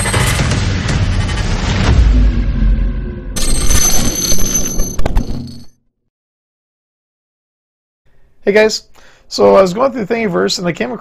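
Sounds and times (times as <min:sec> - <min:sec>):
deep electronic boom: 0:00.0 - 0:03.4.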